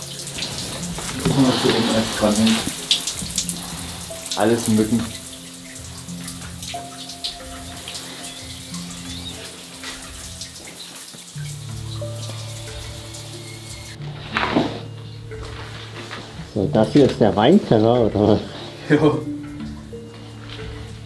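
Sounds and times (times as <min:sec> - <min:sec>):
slow ambient music: 0:00.0 - 0:21.0.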